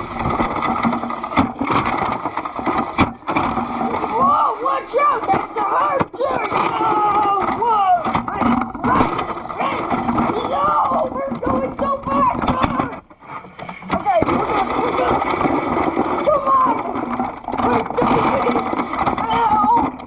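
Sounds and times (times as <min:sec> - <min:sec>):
plastic toy helicopter knocking: 0:00.0 - 0:13.2, 0:13.8 - 0:20.0
voices talking and calling out: 0:03.3 - 0:13.2, 0:13.8 - 0:20.0.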